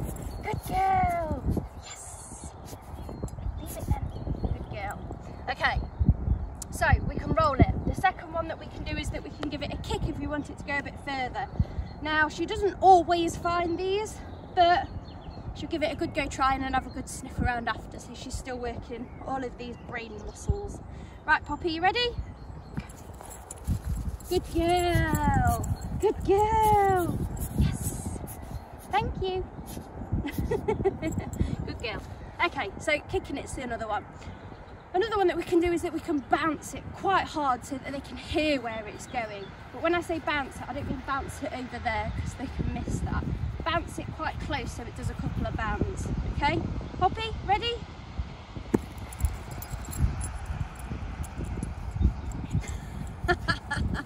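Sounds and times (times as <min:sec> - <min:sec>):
wind rumble on microphone: 0:00.0 - 0:54.0
ball kicked thumps: 0:48.7 - 0:49.2.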